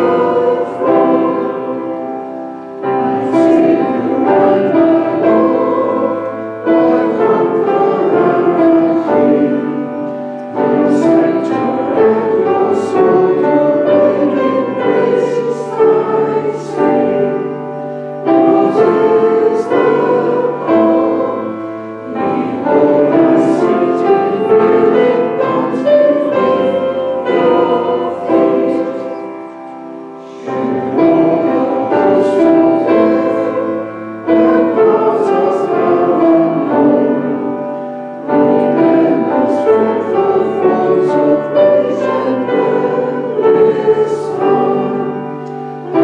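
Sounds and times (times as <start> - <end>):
congregation singing a hymn: 0.0 - 46.0
piano accompaniment: 0.0 - 46.0.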